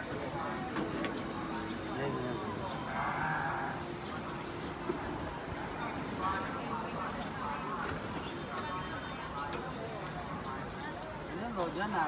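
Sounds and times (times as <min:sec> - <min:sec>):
faint voices: 0:00.0 - 0:12.0
street stall background noise: 0:00.0 - 0:12.0.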